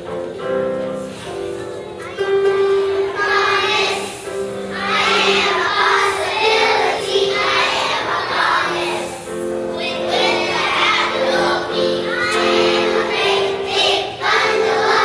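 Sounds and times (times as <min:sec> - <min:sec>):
musical accompaniment: 0:00.0 - 0:15.0
children singing together: 0:01.0 - 0:15.0.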